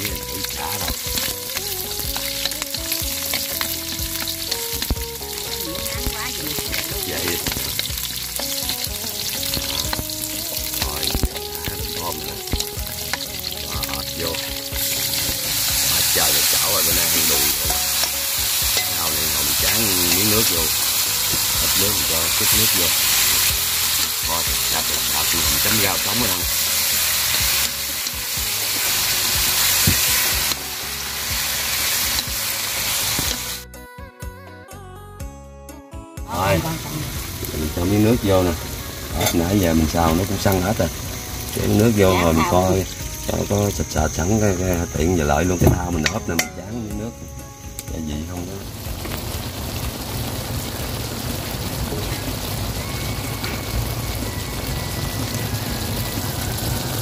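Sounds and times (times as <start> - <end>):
food sizzling in hot oil: 0.0 - 33.7, 36.3 - 57.0.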